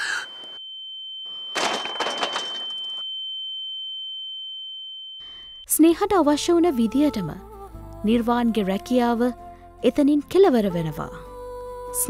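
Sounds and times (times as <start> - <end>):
high ringing tone: 0.0 - 5.7.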